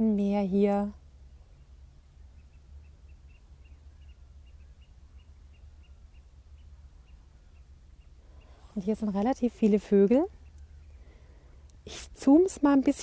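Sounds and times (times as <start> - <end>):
distant birds peeping: 0.0 - 13.0
low steady rumble: 0.0 - 13.0.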